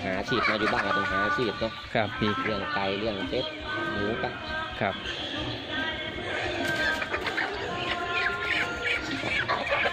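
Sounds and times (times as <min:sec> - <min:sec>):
background music: 0:00.0 - 0:09.9
chickens clucking and chirping: 0:00.0 - 0:09.9.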